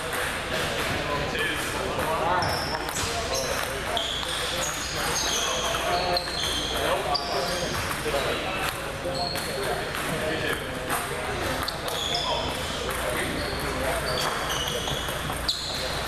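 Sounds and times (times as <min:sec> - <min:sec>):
background chatter: 0:00.0 - 0:16.0
sneakers squeaking on wooden floor: 0:02.3 - 0:08.5, 0:09.1 - 0:10.2, 0:11.4 - 0:16.0
table tennis balls clicking: 0:05.6 - 0:16.0.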